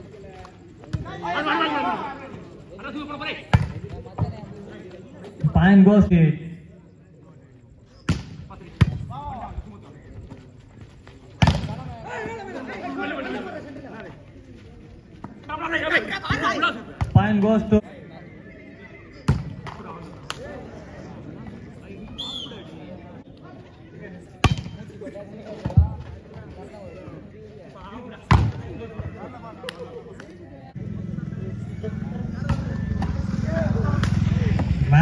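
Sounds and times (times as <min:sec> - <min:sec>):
crowd chatter: 0:00.0 - 0:35.0.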